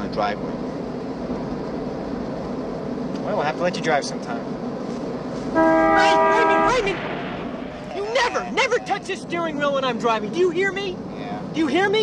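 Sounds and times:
car horn chord: 0:05.6 - 0:07.0.

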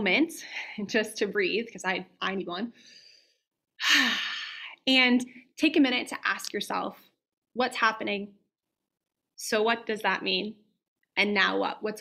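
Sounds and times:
speech: 0:04.8 - 0:07.0, 0:07.6 - 0:08.4, 0:09.4 - 0:10.6, 0:11.2 - 0:12.0.

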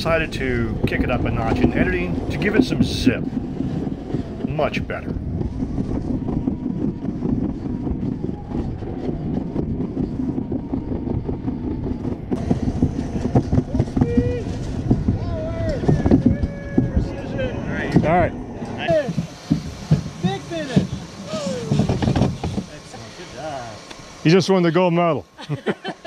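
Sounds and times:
sled rumbling down trough: 0:00.0 - 0:26.0.

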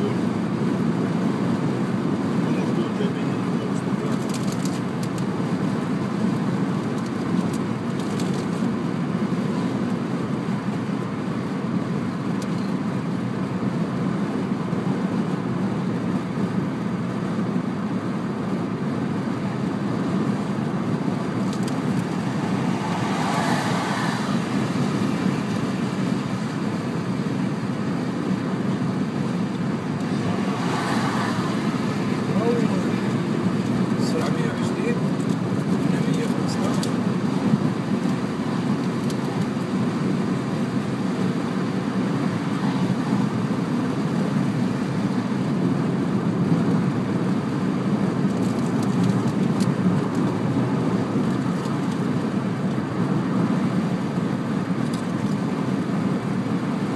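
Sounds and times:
car cabin road and engine noise: 0:00.0 - 0:56.9.

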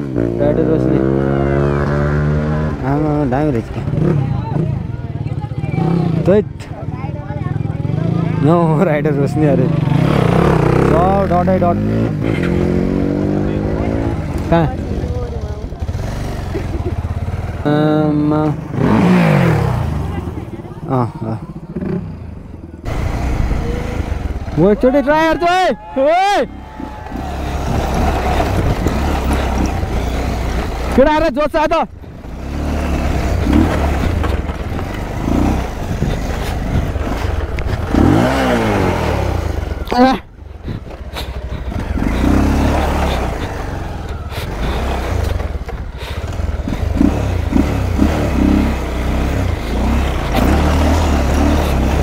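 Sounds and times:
motorcycle engine at low revs: 0:00.0 - 0:25.2, 0:26.6 - 0:52.0.

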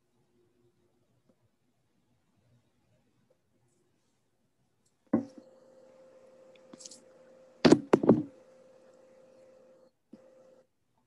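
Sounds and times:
faint steady hum: 0:00.0 - 0:11.0
knocks close to microphone: 0:07.7 - 0:08.3.

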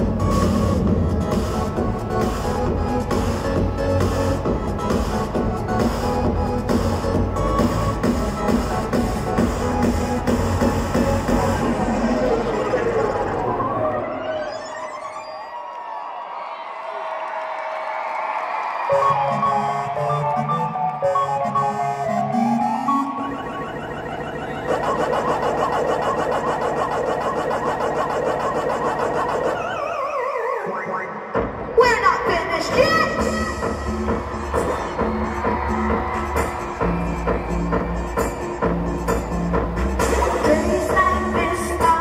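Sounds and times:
electronic pop music in arena: 0:00.0 - 0:42.0
warbling tone falling in pitch: 0:21.5 - 0:31.1
fast electronic pulse: 0:23.0 - 0:30.2.

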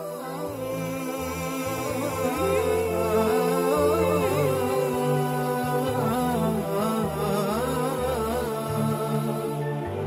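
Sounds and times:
musical accompaniment with bass: 0:00.0 - 0:10.0
person singing wavering melody: 0:00.0 - 0:10.0.

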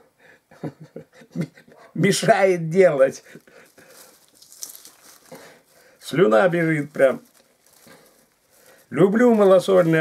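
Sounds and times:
plastic bag rustling: 0:02.8 - 0:10.0.

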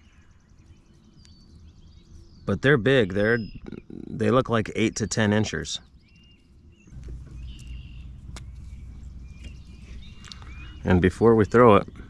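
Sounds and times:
birdsong chirps and trills: 0:00.0 - 0:12.0.

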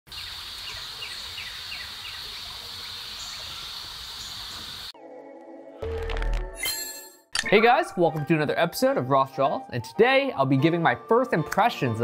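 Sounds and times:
bird chirping: 0:00.1 - 0:04.9
high insect drone: 0:00.2 - 0:04.9.

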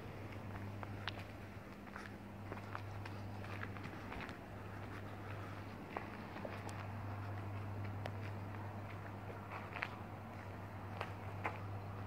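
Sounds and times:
footsteps of people walking: 0:00.0 - 0:12.0
steady low hum: 0:00.0 - 0:12.0.

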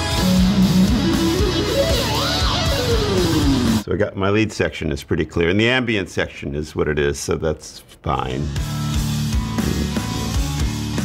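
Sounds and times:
electric guitar riff: 0:00.0 - 0:03.8.

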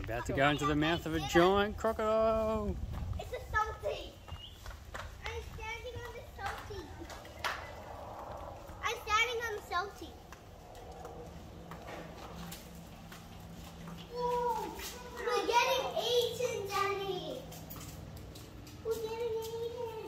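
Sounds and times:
young children calling out: 0:14.1 - 0:17.5, 0:18.8 - 0:20.0.

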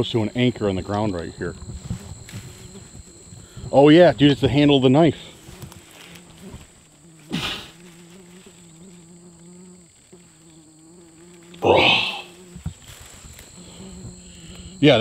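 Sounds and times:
bees buzzing: 0:00.0 - 0:15.0
plants rustling: 0:00.0 - 0:15.0.

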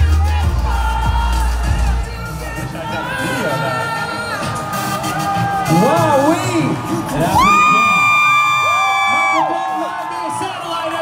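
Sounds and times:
crowd whooping and cheering: 0:04.8 - 0:11.0.

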